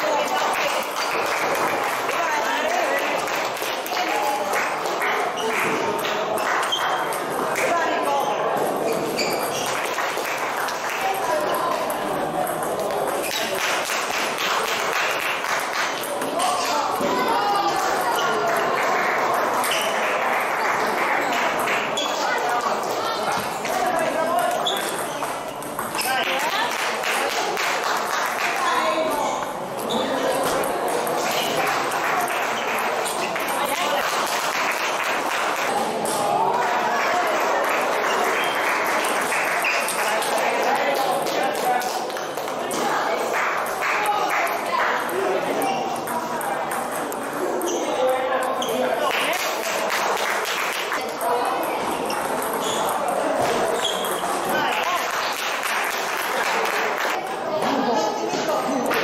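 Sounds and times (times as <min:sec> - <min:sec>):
table tennis balls bouncing: 0:00.0 - 0:57.8
voices chattering: 0:00.0 - 0:59.0.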